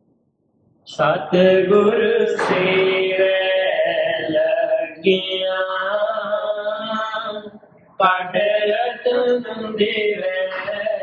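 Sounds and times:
man chanting a hymn: 0.9s - 11.0s.

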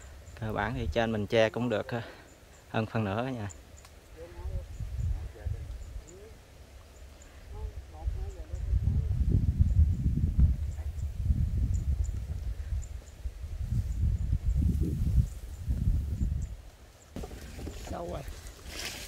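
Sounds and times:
wind buffeting microphone: 0.0s - 1.3s, 4.2s - 6.3s, 7.4s - 19.0s.

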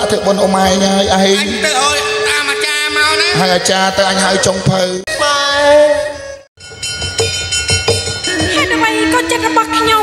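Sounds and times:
sharp percussion strikes: 6.6s - 10.0s.

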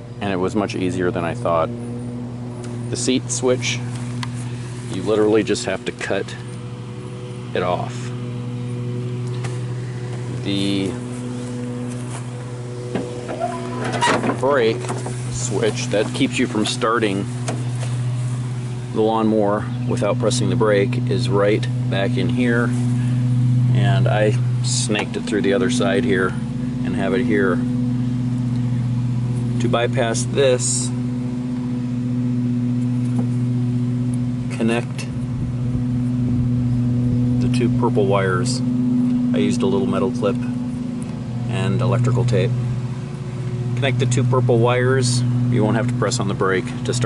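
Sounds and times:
low machine hum: 0.0s - 47.0s.

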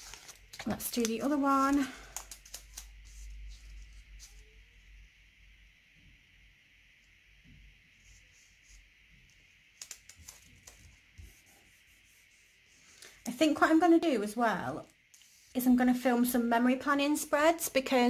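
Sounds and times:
sticker peeled and rubbed on paper: 2.4s - 4.5s.

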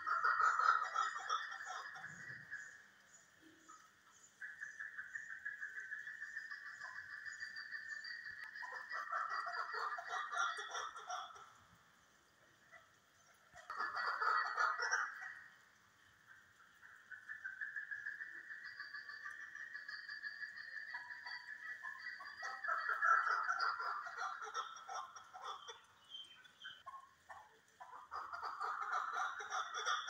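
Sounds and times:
partridges calling: 0.0s - 11.5s, 16.3s - 30.0s.

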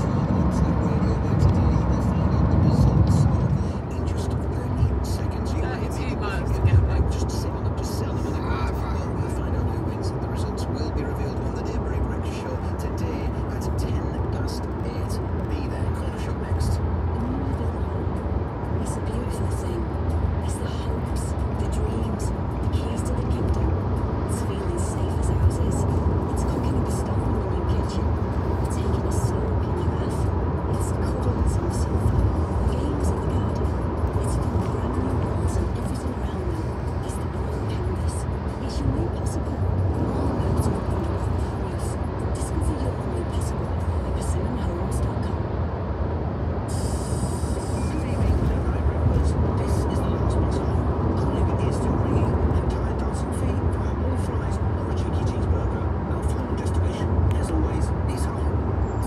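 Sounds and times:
voices talking: 0.0s - 45.6s, 46.7s - 59.0s
car road and engine rumble: 0.0s - 59.0s
music playing: 12.6s - 46.0s.

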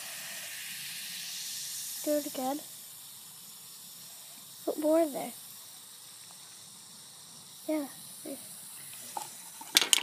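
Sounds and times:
fizzing hiss: 0.0s - 10.0s
plastic cups knocking: 9.2s - 10.0s.

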